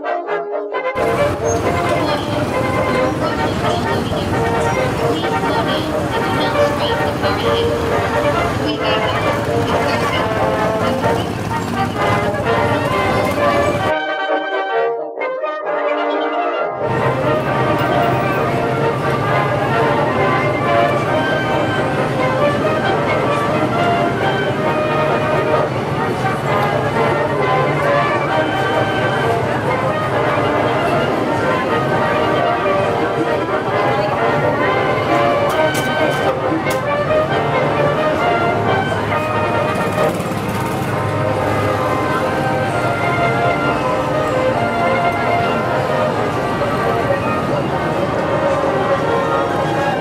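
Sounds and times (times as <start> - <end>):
music: 0.0 - 50.0
small gasoline engines running: 1.0 - 13.9, 16.8 - 32.6, 33.8 - 50.0
crowd voices: 1.0 - 14.0, 16.8 - 50.0.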